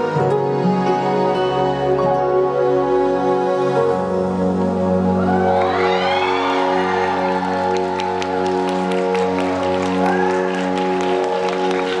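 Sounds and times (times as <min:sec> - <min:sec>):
scattered claps: 0:07.5 - 0:12.0.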